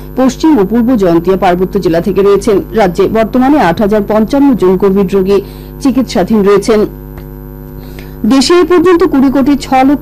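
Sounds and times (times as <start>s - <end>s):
electrical mains hum: 0.0s - 10.0s
newsreader speaking: 0.2s - 6.9s, 8.2s - 10.0s.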